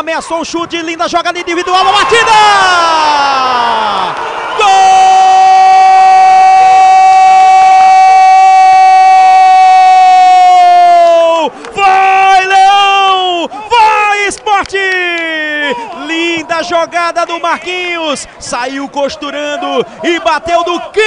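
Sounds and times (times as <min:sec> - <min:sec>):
man shouting excited phrases: 0:00.0 - 0:21.0
commentator's long goal shout: 0:01.5 - 0:18.2, 0:19.0 - 0:21.0.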